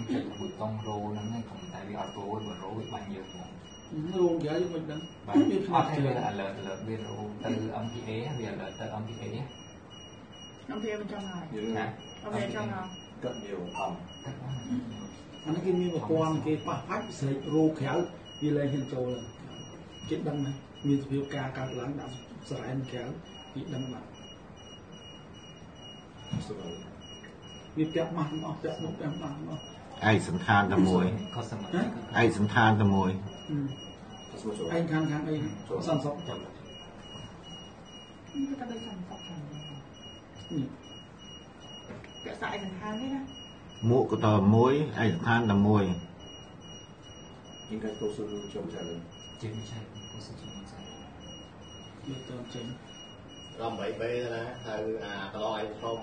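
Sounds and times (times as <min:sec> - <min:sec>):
electronic alarm beeping: 0:00.0 - 0:56.0
low background noise: 0:00.0 - 0:56.0.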